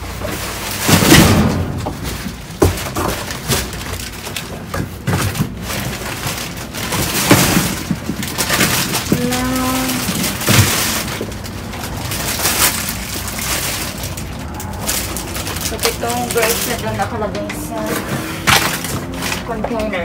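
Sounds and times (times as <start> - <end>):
cardboard boxes scraping and knocking: 0.0 - 14.0, 14.8 - 19.9
plastic bags rustling and crinkling: 0.0 - 20.0.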